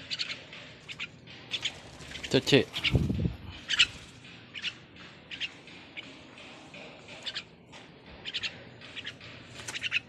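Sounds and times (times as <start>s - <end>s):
bird chirping: 0.0s - 6.2s, 8.2s - 10.0s.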